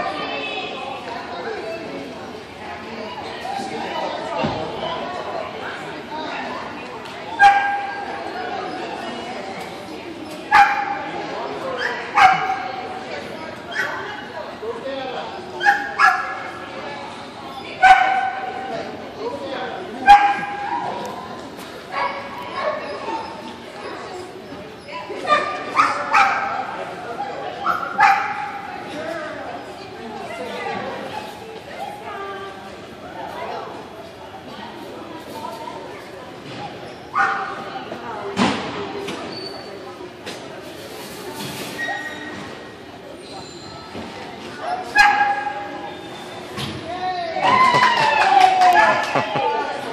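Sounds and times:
people chattering: 0.0 - 49.9.

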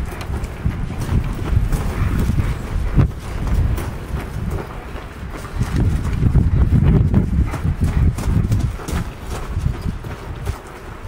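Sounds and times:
footsteps crunching on gravel: 0.0 - 11.0.

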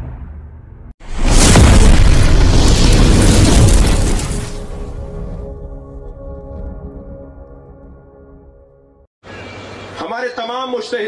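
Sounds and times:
explosion boom rumbling: 1.0 - 8.0.

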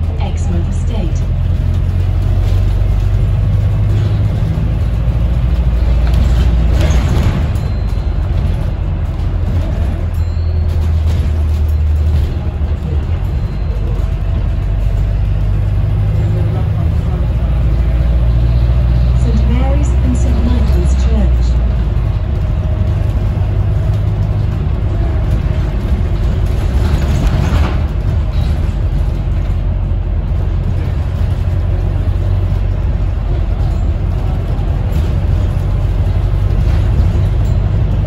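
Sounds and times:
bus drivetrain and road rumble: 0.0 - 38.0.

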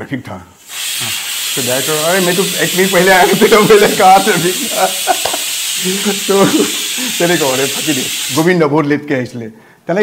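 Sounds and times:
food sizzling in a frying pan: 0.6 - 8.6
people talking: 1.6 - 10.0
people laughing: 2.8 - 8.5.

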